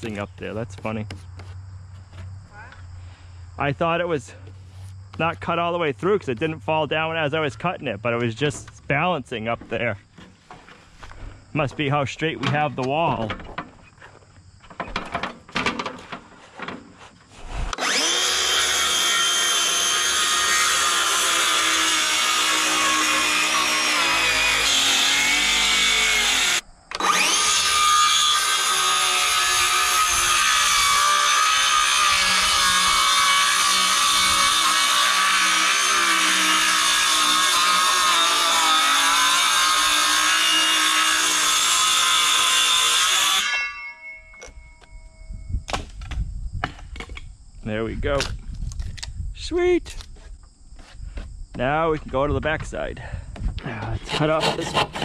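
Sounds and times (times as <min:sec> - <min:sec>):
circular saw cutting wood: 0:17.6 - 0:44.9, 0:53.7 - 0:55.0.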